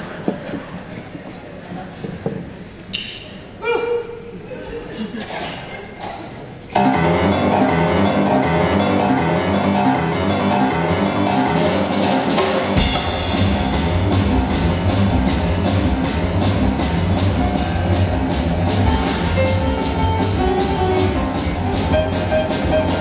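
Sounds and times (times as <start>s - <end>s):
boogie-woogie piano: 6.8s - 23.0s
drum kit beat: 6.8s - 23.0s
upright bass line: 6.8s - 23.0s.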